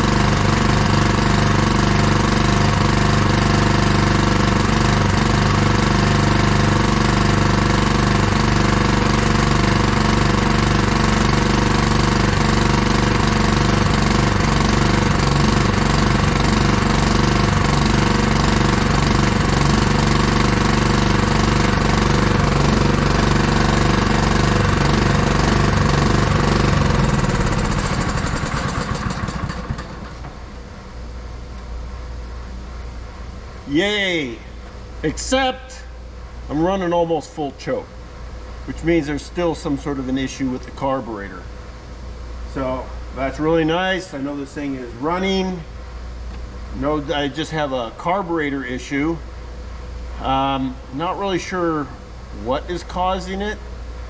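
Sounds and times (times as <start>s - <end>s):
small gasoline engine running: 0.0s - 30.4s.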